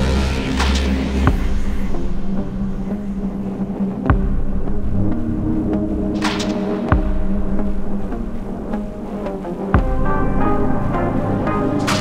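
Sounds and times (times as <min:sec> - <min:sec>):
throbbing synth drone: 0:00.0 - 0:12.0.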